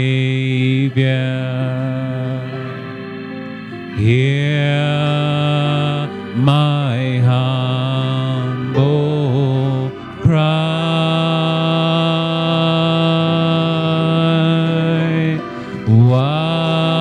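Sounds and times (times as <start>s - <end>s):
man singing into microphone: 0.0s - 3.0s, 3.8s - 17.0s.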